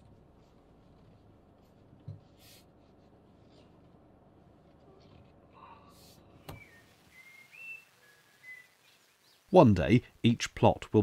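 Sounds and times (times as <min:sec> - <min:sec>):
whistled bird notes: 0:06.4 - 0:09.5.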